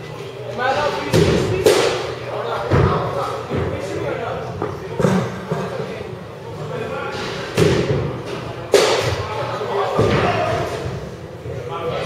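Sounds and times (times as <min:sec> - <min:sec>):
baseballs being struck: 0:01.0 - 0:03.8, 0:07.3 - 0:11.1.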